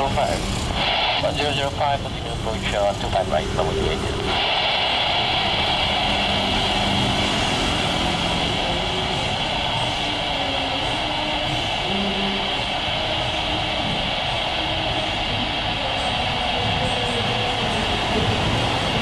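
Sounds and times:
jet engines at takeoff thrust: 0:00.0 - 0:19.0.

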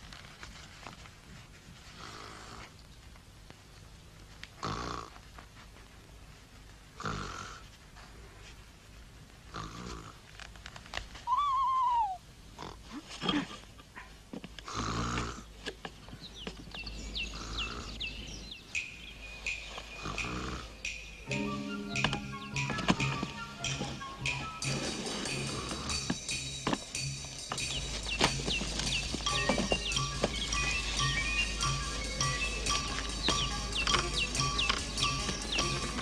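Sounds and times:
music with chirping figures: 0:17.2 - 0:36.0.

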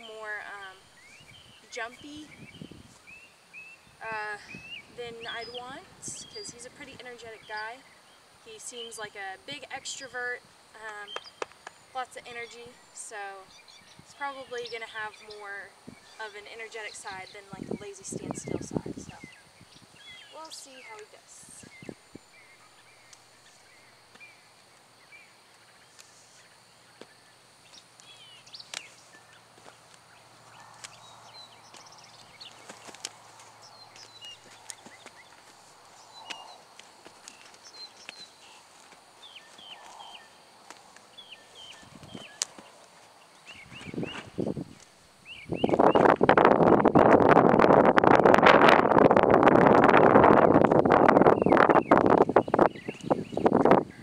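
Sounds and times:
faint bird chirps: 0:09.7 - 0:36.7, 0:37.3 - 0:40.4, 0:45.2 - 0:46.2, 0:51.0 - 0:54.0
rope scuffing and rustling: 0:25.9 - 0:45.0.

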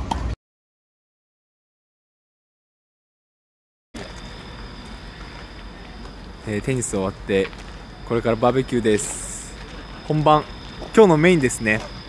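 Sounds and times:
distant traffic rumble: 0:04.0 - 0:12.0.

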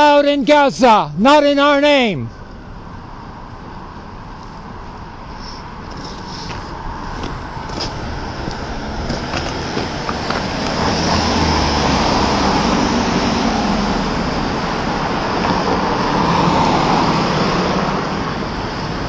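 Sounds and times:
cars driving past: 0:02.3 - 0:19.0.

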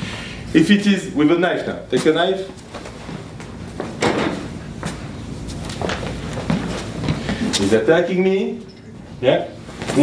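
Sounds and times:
low room hum: 0:00.0 - 0:10.0
knocks and scuffs: 0:02.0 - 0:07.7.

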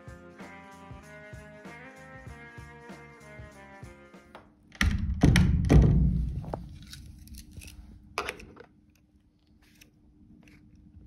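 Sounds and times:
heavy door clunks: 0:04.8 - 0:06.2.

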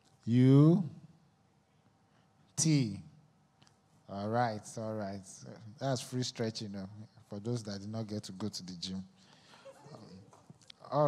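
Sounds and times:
faint room murmur: 0:00.0 - 0:11.0
man speaking into microphone: 0:00.2 - 0:01.1, 0:02.5 - 0:03.2, 0:04.0 - 0:11.0.

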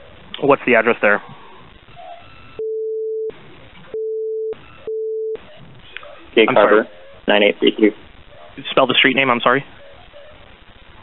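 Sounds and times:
censor bleeps: 0:02.4 - 0:05.4.

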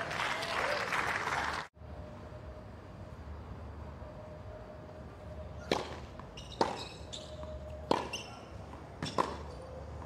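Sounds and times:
crowd applause: 0:00.0 - 0:01.7.

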